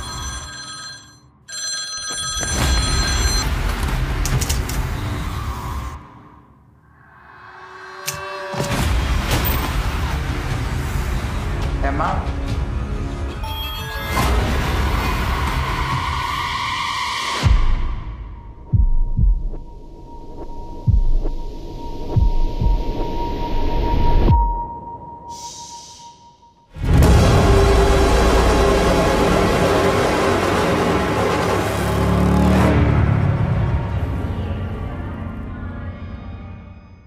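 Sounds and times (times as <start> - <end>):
high ringing tone: 0.0 - 3.5, 24.3 - 26.7.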